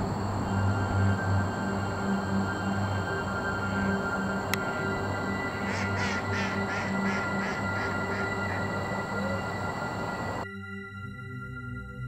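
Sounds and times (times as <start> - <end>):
background music with held tones: 0.0 - 12.0
duck quacking: 5.6 - 9.4.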